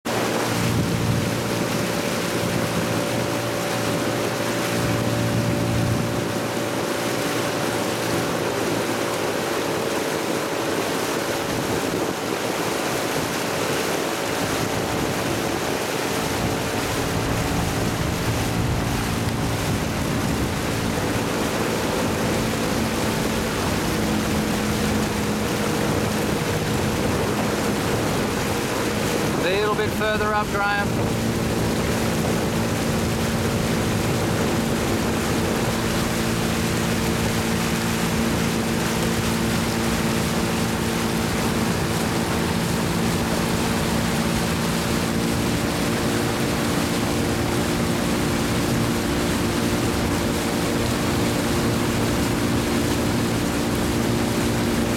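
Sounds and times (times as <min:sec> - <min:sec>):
outboard motor running: 0:00.0 - 0:54.9
water noise: 0:00.0 - 0:54.9
wind on microphone: 0:00.1 - 0:54.9.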